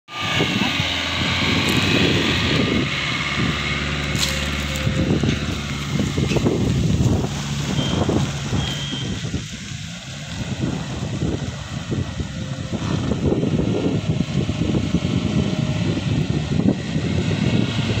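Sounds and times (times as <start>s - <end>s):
car engine running: 0.1s - 18.0s.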